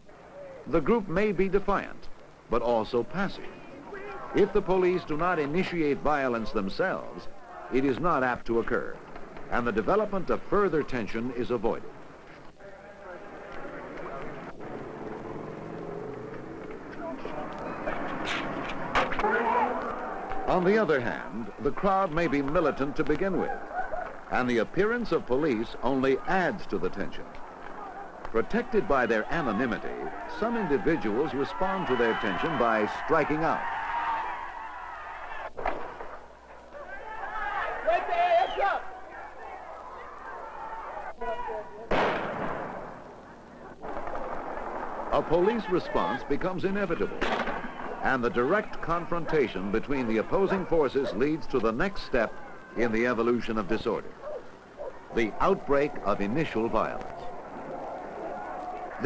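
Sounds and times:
faint street noise: 0:00.0 - 0:59.0
vehicle engine humming: 0:13.9 - 0:18.9
gunshot with echo: 0:41.9 - 0:42.9.

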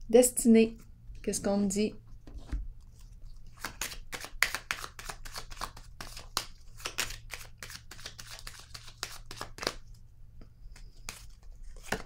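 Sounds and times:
cards being shuffled: 0:02.4 - 0:09.9, 0:10.7 - 0:12.0.

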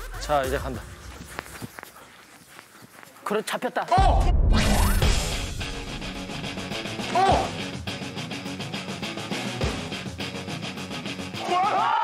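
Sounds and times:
bare feet scuffing in sand: 0:00.7 - 0:03.9.

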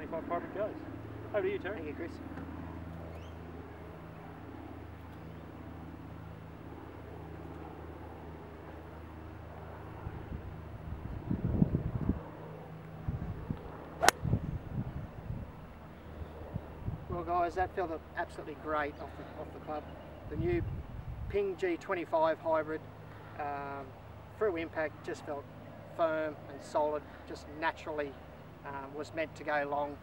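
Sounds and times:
golf club striking ball: 0:14.0 - 0:14.2.

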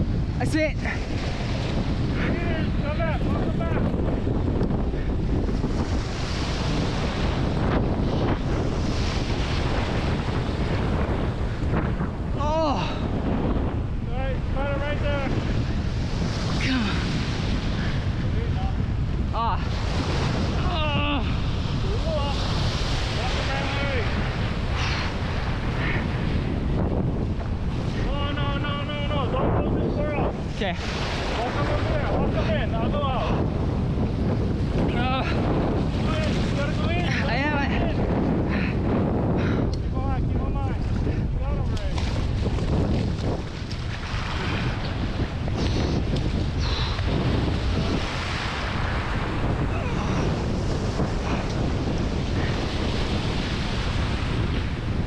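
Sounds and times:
surf breaking on rocky shore: 0:00.0 - 0:55.0
wind buffeting microphone: 0:00.0 - 0:55.0.

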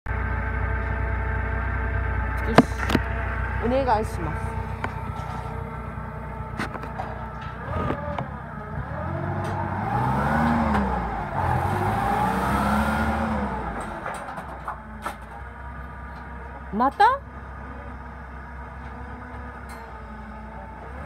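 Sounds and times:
forklift engine revving: 0:00.1 - 0:21.0.

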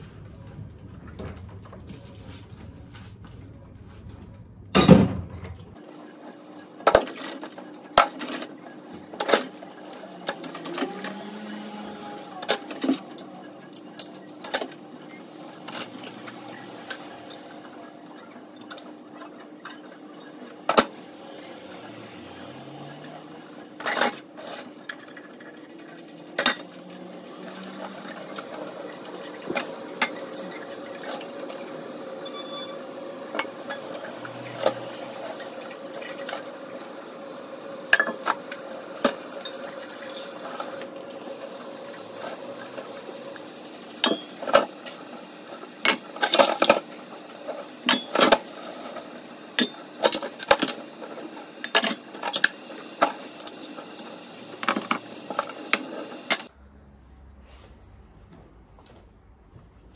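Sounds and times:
crockery and utensils clinking: 0:26.3 - 0:26.8.

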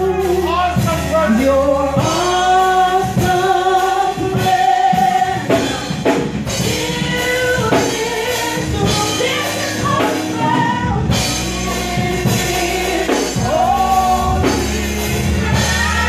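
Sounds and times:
instrumental backing with drums: 0:00.0 - 0:16.0
women singing gospel: 0:00.0 - 0:16.0.

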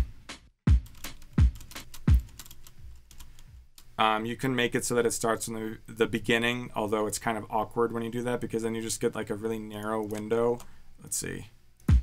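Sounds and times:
kick drum hits: 0:00.0 - 0:02.3
hi-hat and snare ticks: 0:00.0 - 0:02.5.

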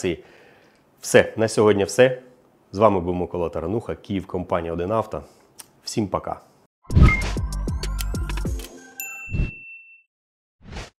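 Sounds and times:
bright bell-like ding: 0:09.0 - 0:10.1.

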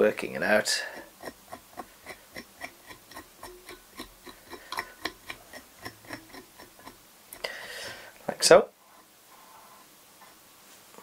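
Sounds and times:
brush scratching strokes: 0:00.5 - 0:07.0.

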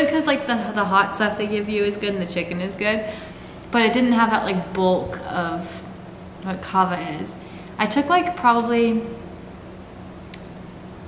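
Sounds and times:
small click: 0:10.3 - 0:10.6.

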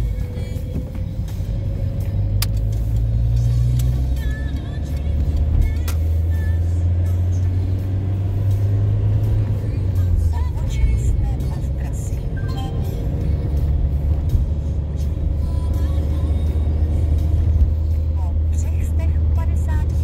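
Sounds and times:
car engine drone: 0:00.0 - 0:20.0
road noise inside car: 0:00.0 - 0:20.0.

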